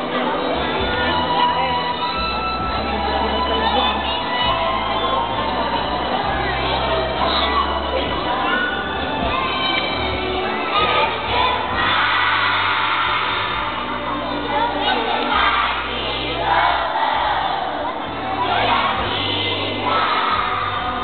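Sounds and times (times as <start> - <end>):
children singing and shouting: 0.0 - 21.0
music with steady bass line: 0.0 - 21.0.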